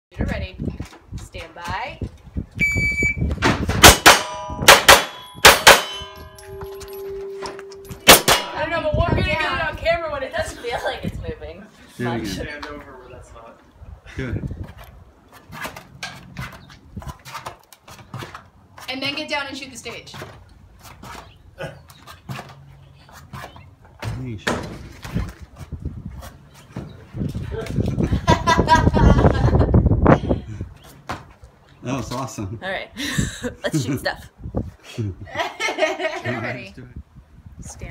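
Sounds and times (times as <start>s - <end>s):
shot timer beep: 2.6s - 3.3s
pistol shots: 3.8s - 6.1s, 8.0s - 8.6s
steel targets ringing: 3.9s - 9.0s.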